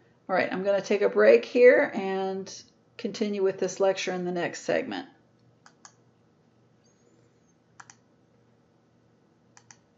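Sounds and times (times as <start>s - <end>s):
computer mouse double clicks: 7.8s - 8.0s, 9.6s - 9.8s.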